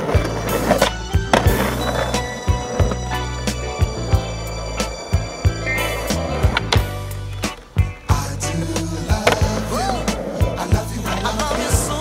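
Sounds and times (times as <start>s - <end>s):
skateboard clacking on ground: 0.0s - 4.0s, 8.6s - 12.0s
disco-soul song with singing: 0.0s - 12.0s
skateboard wheels rolling on asphalt: 0.0s - 12.0s.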